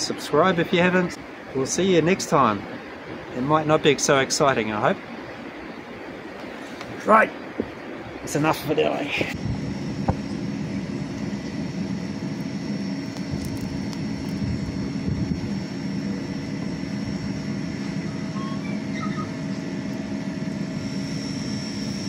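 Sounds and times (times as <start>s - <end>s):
motor whine: 0.0s - 22.0s
electric air blower roaring: 5.1s - 22.0s.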